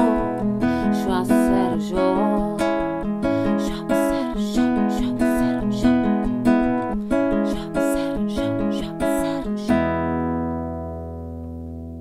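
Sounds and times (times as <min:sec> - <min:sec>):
classical guitar chord ringing: 0:09.8 - 0:12.0.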